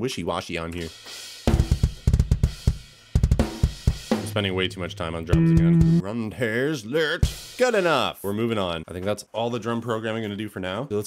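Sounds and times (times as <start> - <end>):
drum kit playing fast pattern: 0.8 - 6.0, 7.0 - 8.2.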